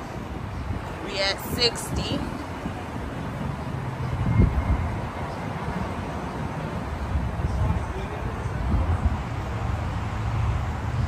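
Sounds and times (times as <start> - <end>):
wind on microphone: 0.0 - 11.0.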